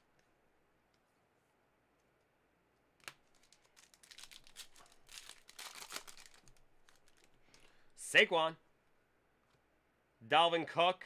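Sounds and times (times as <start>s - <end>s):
wrapper crackling and rustling: 3.2s - 7.5s.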